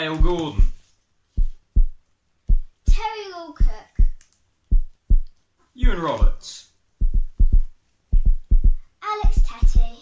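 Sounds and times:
thudding kick drum beat: 1.4 - 6.0, 7.0 - 10.0.

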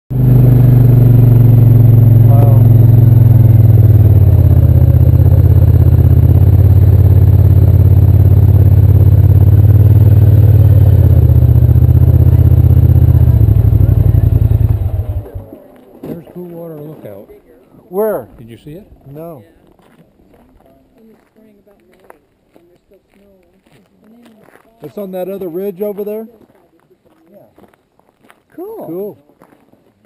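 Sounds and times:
quad bike engine running: 0.1 - 16.3.

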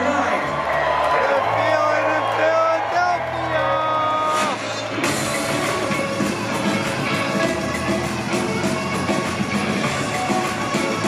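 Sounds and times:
live rock band music: 3.1 - 11.0.

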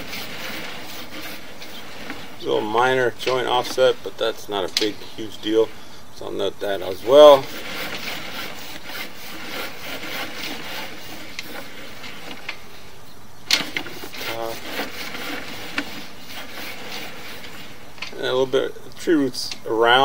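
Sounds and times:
cable rubbing and scraping in pipe: 0.0 - 18.8.

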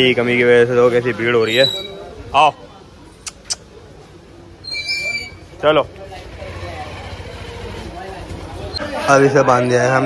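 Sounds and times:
faint distant voices: 0.0 - 10.0.

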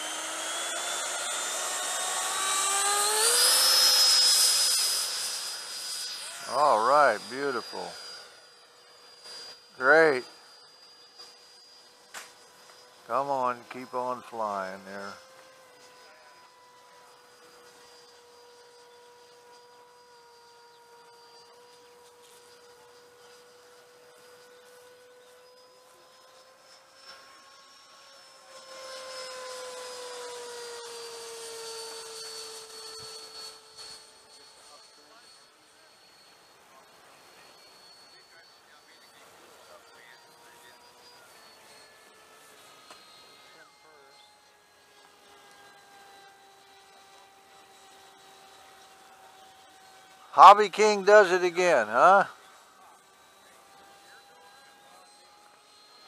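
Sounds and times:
rc jet whining: 0.0 - 56.0.

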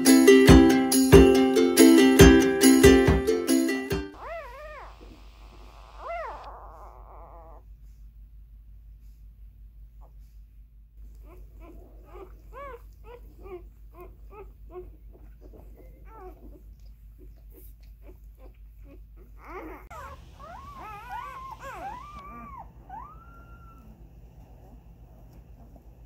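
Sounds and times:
puppies whimpering and squeaking: 4.1 - 7.7, 11.0 - 24.1.

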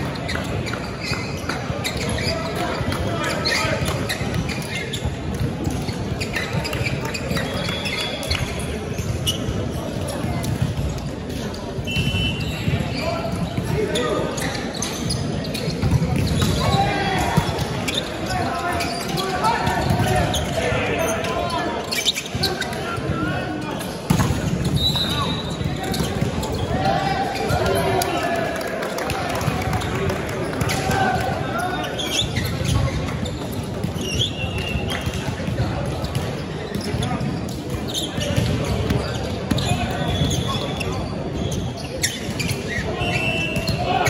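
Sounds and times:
players shouting: 16.4 - 23.7.

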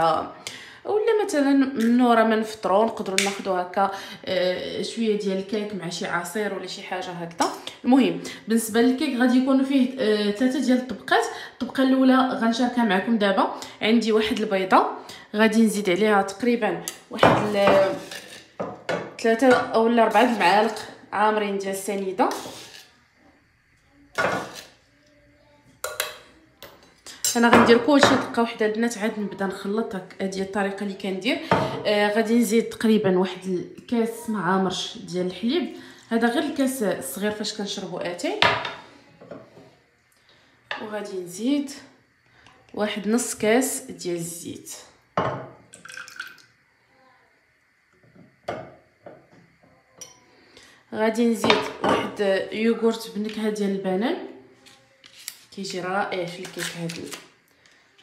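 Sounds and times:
glass bottle clinking on countertop: 45.2 - 46.4
oil pouring: 45.7 - 46.5.

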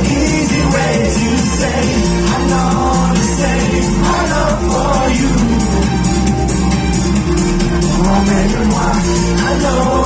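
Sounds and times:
live pop music: 0.0 - 10.0.

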